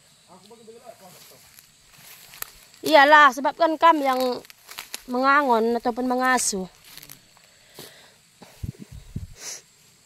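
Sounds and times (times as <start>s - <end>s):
faint steady high hiss: 0.0s - 10.0s.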